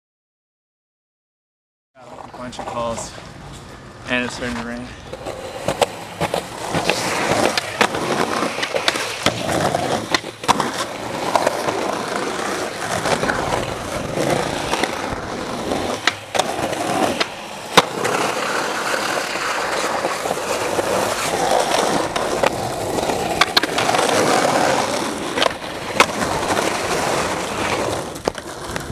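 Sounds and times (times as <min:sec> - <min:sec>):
skateboard wheels rolling: 0:02.0 - 0:28.9
skateboard clacking on ground: 0:02.1 - 0:28.9.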